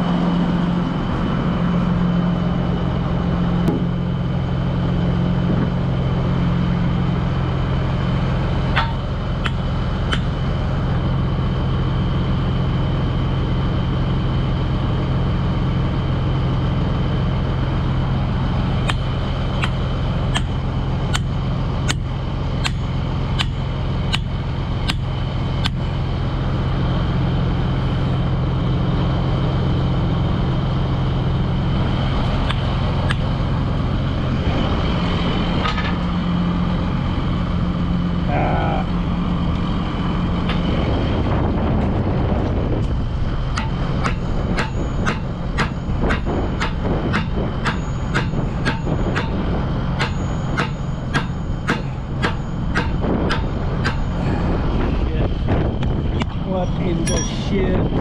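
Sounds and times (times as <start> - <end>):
heavy diesel engine running: 0.0 - 58.0
thin high whine: 0.0 - 58.0.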